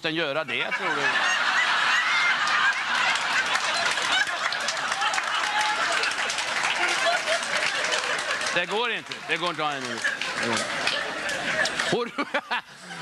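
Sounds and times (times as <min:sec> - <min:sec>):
audience laughing: 0:00.5 - 0:13.0
scattered clapping: 0:02.3 - 0:12.1.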